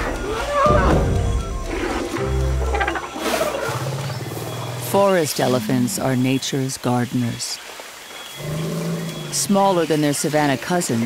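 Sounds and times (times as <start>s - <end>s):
elephants calling low rumbles: 0.0s - 6.3s
background music: 0.0s - 6.6s.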